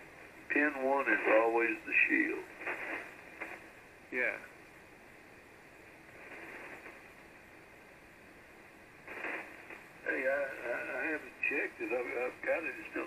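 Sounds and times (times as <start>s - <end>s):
radio band hiss: 0.0s - 4.8s, 5.4s - 13.0s
man's voice over radio: 0.5s - 2.5s, 10.0s - 13.0s.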